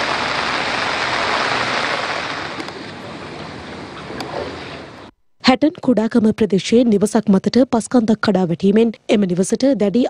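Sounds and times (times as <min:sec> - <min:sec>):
rain falling on water: 0:00.0 - 0:05.0.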